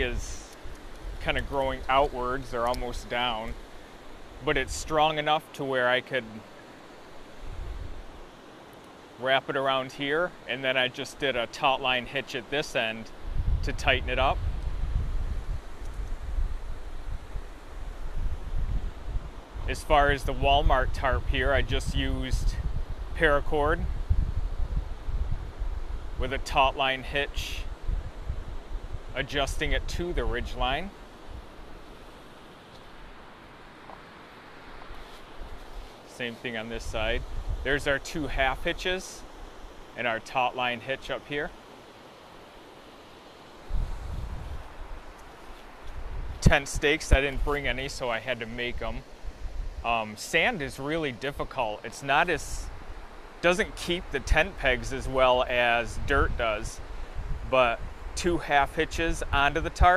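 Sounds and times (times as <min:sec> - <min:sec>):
wind buffeting microphone: 0:00.0 - 0:05.0, 0:07.3 - 0:08.2, 0:13.1 - 0:26.7, 0:27.3 - 0:31.9, 0:36.7 - 0:39.6, 0:43.6 - 0:50.6, 0:52.3 - 0:59.9
creek water rushing: 0:00.0 - 0:13.6, 0:30.8 - 0:58.6.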